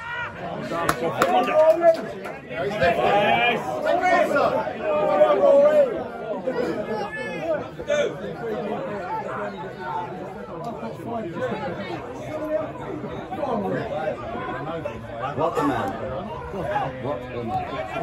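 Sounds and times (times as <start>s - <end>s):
spectators chattering and calling out: 0.0s - 18.0s.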